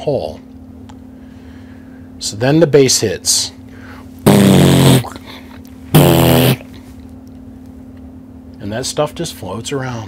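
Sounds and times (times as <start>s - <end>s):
man imitating bass with mouth: 4.2s - 6.8s.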